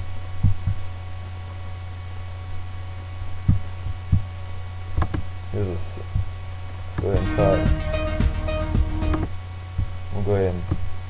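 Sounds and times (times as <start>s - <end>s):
low electrical hum: 0.0s - 11.0s
dull low thumps: 3.4s - 4.3s, 6.1s - 6.4s, 7.0s - 10.0s.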